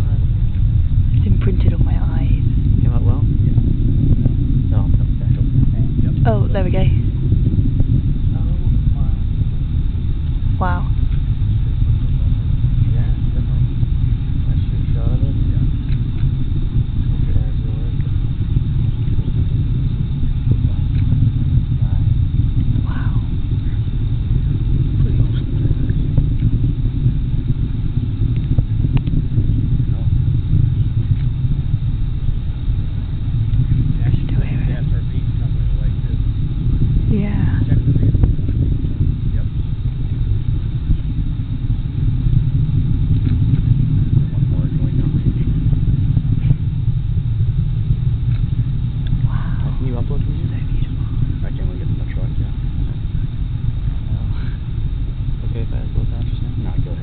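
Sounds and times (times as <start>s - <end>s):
distant rocket engines rumbling: 0.0s - 57.0s.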